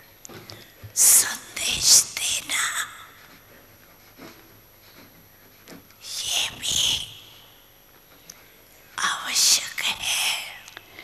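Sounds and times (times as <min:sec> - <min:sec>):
woman whispering into microphone: 0:01.0 - 0:03.2, 0:06.0 - 0:07.4, 0:08.9 - 0:11.0.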